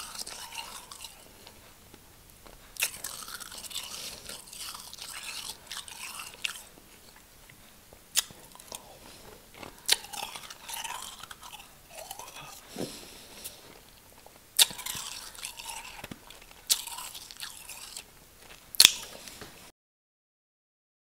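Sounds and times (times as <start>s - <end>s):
chewing snow crunching: 0.0s - 19.4s.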